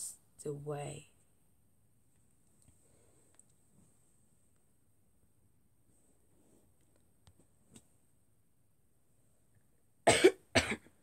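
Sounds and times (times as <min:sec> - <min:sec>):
girl coughing: 0:10.1 - 0:10.9.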